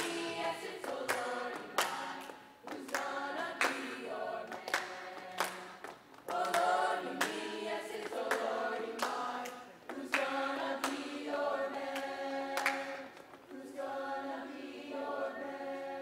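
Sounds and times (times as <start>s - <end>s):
hand claps on a beat: 0.0s - 13.6s
children's choir singing: 0.0s - 16.0s.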